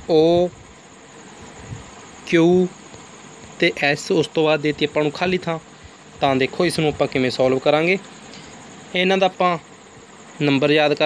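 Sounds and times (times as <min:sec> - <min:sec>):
faint high whine: 0:00.0 - 0:11.0
steady background hiss: 0:00.0 - 0:11.0
man saying a letter: 0:08.9 - 0:09.6.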